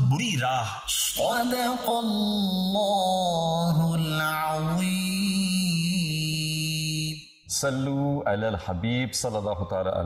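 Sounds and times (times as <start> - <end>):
person chanting: 0.0 - 9.1.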